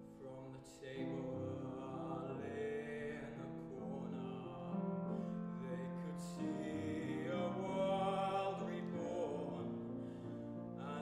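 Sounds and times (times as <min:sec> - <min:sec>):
grand piano accompaniment: 0:00.0 - 0:11.0.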